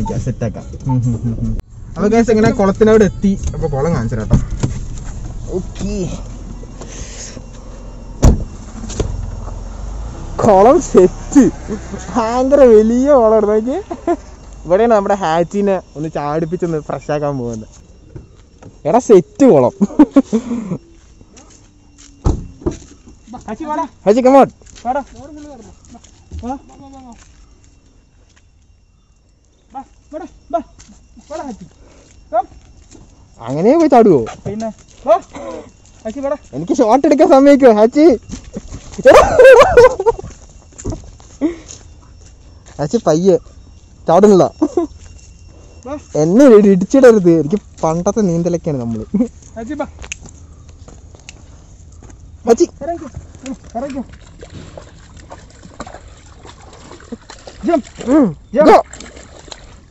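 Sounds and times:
dog whining: 0:00.0 - 0:01.6
low steady rumble: 0:00.0 - 0:11.2
car door thump: 0:04.2 - 0:05.9, 0:08.2 - 0:09.2, 0:22.2 - 0:22.8.

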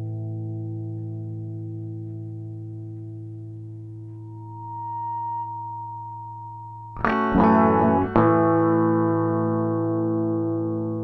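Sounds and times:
electric guitar through effects: 0:00.0 - 0:11.0.

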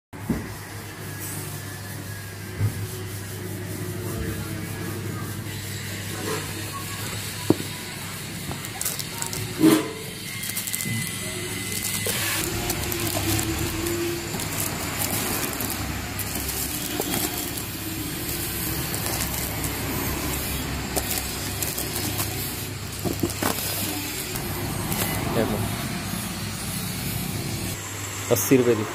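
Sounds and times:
steady background noise: 0:00.2 - 0:28.9
cardboard and plastic rustling: 0:06.4 - 0:26.8.

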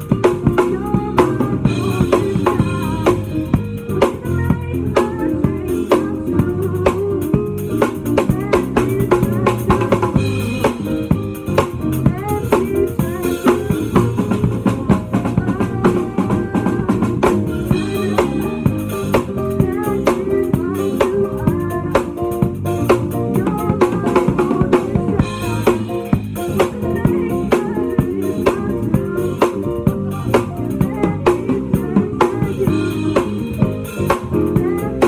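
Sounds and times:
drum kit groove: 0:00.0 - 0:35.0
live band playing: 0:00.0 - 0:35.0.

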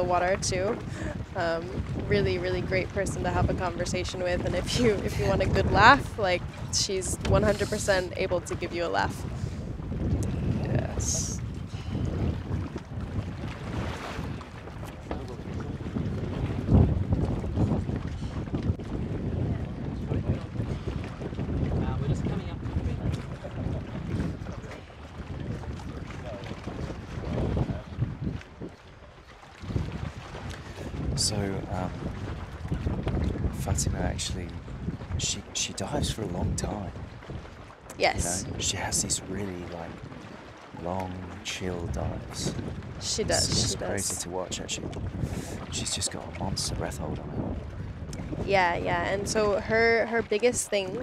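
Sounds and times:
wind buffeting microphone: 0:00.0 - 0:51.0.

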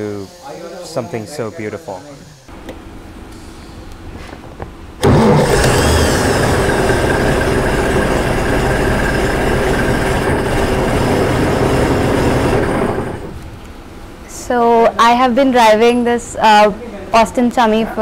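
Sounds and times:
car engine starting and running: 0:05.0 - 0:13.4.

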